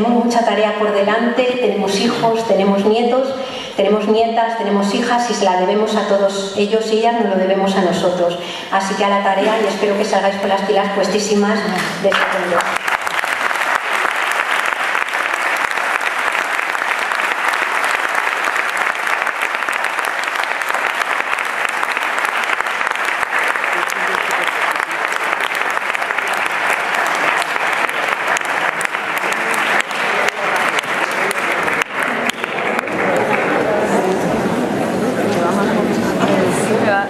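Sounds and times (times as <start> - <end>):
audience applauding: 12.1 - 34.4.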